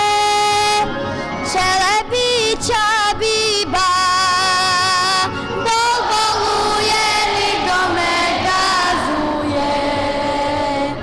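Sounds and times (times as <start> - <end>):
folk music accompaniment: 0.0 - 11.0
children's choir singing: 5.6 - 11.0.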